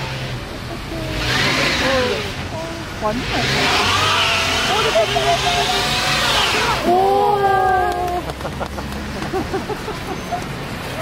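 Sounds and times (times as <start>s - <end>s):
wheels spinning on snow: 0.0s - 2.4s, 3.0s - 7.4s
engine revving: 0.0s - 7.2s.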